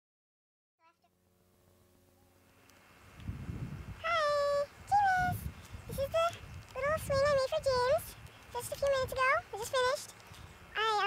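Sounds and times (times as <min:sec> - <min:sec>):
low rumble of wind: 0:01.5 - 0:11.0.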